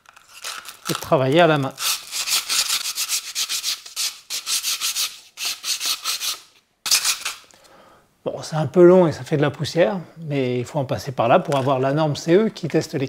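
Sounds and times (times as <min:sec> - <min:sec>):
sandpaper rubbing on wood: 0:01.6 - 0:07.3.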